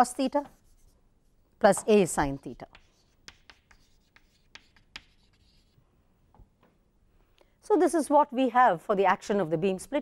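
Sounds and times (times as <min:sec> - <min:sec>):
chalk tapping and scratching: 0:00.2 - 0:01.0, 0:01.7 - 0:05.8.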